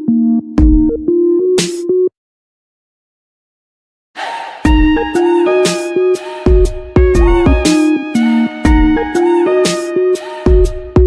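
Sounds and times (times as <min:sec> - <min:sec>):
electronic background music: 0:00.0 - 0:02.1, 0:04.6 - 0:11.0.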